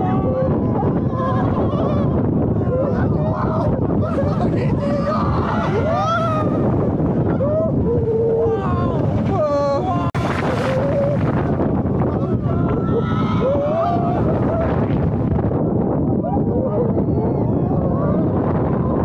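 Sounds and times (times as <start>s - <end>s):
riders screaming and whooping: 0.0s - 19.0s
strong wind on microphone: 0.0s - 19.0s.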